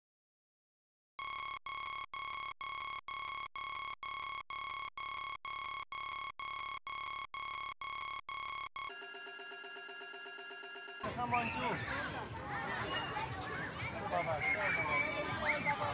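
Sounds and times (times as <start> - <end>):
electronic alarm beeping: 1.2 - 11.2
busy electronic sound: 1.2 - 11.6.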